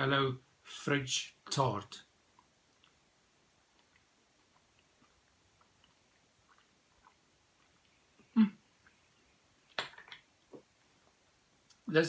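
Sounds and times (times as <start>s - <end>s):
mouth smacks: 3.7s - 9.0s.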